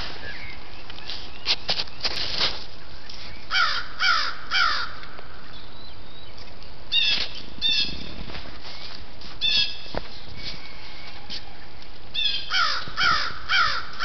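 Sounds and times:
crows cawing: 0:03.5 - 0:05.1, 0:12.2 - 0:14.0.

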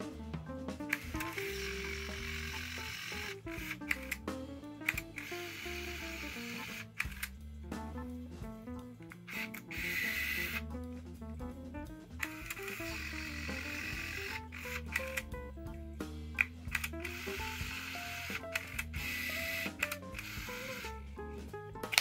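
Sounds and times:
background music: 0:00.0 - 0:22.0
camera zoom lens whirring: 0:00.9 - 0:04.2, 0:04.8 - 0:07.4, 0:09.1 - 0:10.7, 0:12.2 - 0:15.3, 0:16.4 - 0:21.0.

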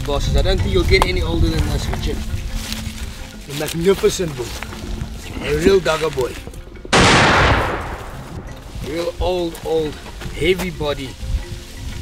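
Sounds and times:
rifle shot with echo: 0:06.9 - 0:08.6.

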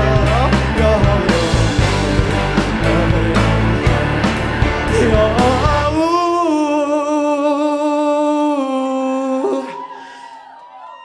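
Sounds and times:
live band music: 0:00.0 - 0:06.2.

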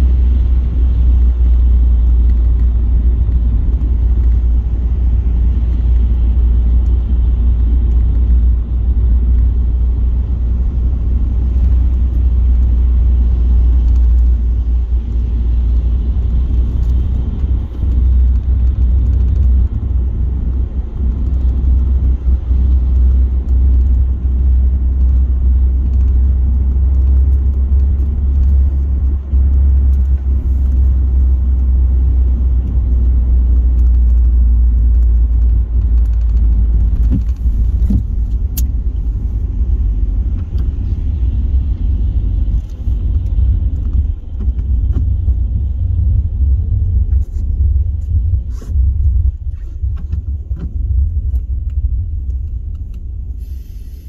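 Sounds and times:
car road rumble from inside: 0:00.0 - 0:54.0
tyres hissing on wet road: 0:53.3 - 0:54.0.

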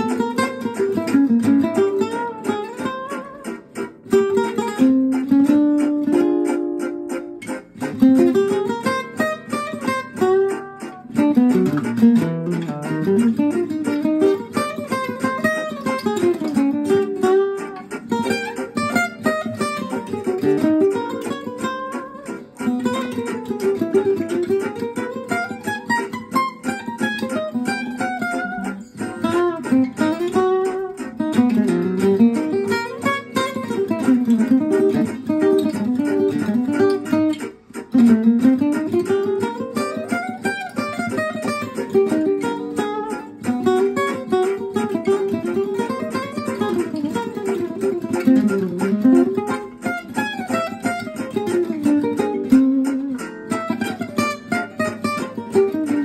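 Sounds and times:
acoustic guitar jazz improvisation: 0:00.0 - 0:56.0.

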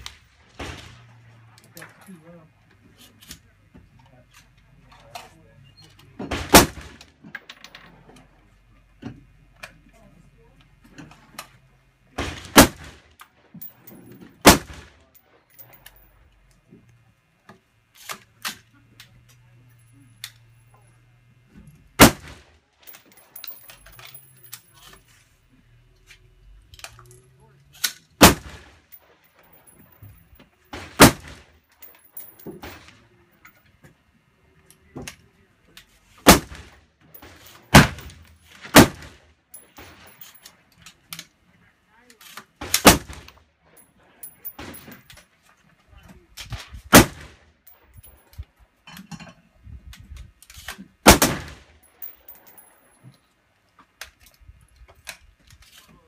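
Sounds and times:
rifle shots: 0:06.3 - 0:07.0, 0:12.2 - 0:13.0, 0:14.4 - 0:15.0, 0:22.0 - 0:22.5, 0:28.2 - 0:28.8, 0:30.7 - 0:31.5, 0:36.2 - 0:39.2, 0:42.6 - 0:43.3, 0:46.9 - 0:47.4, 0:51.0 - 0:51.7
faint cracks and clinks: 0:22.8 - 0:25.1, 0:51.6 - 0:56.0.

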